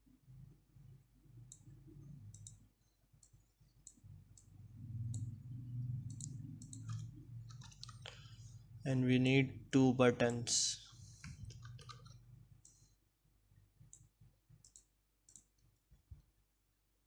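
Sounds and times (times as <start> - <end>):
computer mouse clicks: 1.5 - 2.6, 3.2 - 5.4, 6.0 - 8.2, 10.2 - 12.9, 13.9 - 15.9.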